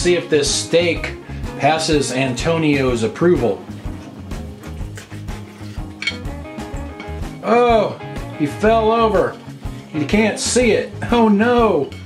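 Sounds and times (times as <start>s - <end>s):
background guitar music: 0.0s - 12.0s
knife and fork on a plate: 4.6s - 6.3s
cutlery clink: 4.9s - 7.4s.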